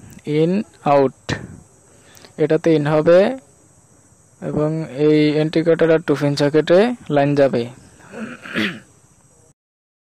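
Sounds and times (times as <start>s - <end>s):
man speaking: 0.2s - 3.6s, 4.4s - 8.4s.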